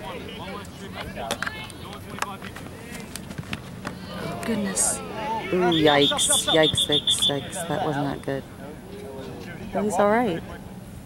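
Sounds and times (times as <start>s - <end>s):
people calling out outdoors: 0.0s - 2.2s, 3.9s - 10.7s.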